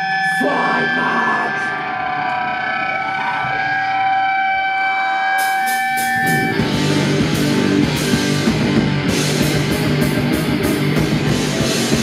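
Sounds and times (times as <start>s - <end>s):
electric guitar feedback drone: 0.0s - 12.0s.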